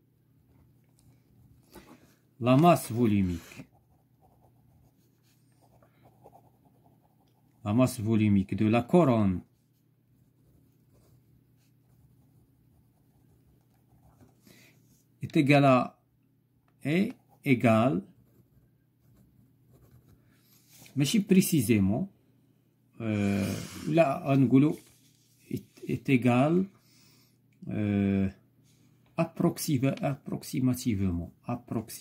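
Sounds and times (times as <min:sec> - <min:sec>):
pen scratching on paper: 0:02.6 - 0:07.6, 0:10.2 - 0:14.4, 0:17.1 - 0:20.7
paper rustling: 0:24.6 - 0:25.7.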